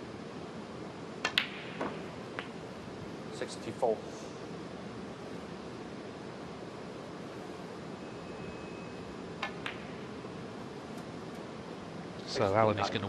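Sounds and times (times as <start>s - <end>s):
steady hiss: 0.0s - 13.0s
snooker balls clicking: 1.2s - 2.6s, 9.4s - 10.0s.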